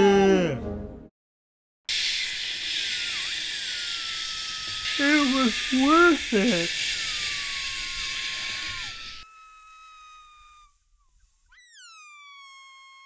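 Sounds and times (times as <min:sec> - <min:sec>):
rushing hiss: 0:01.9 - 0:09.2.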